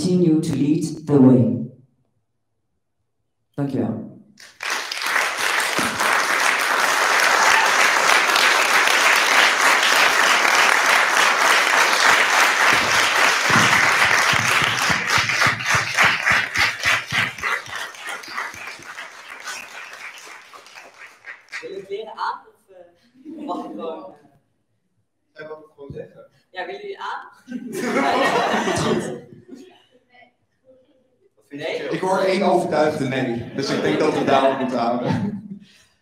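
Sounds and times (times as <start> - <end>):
audience applause: 4.4 - 21.8.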